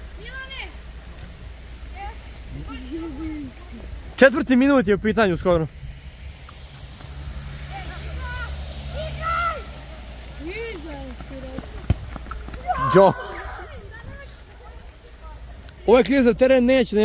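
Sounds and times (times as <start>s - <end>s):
low steady rumble: 0.0s - 12.7s
distant shouts of players: 12.6s - 13.9s.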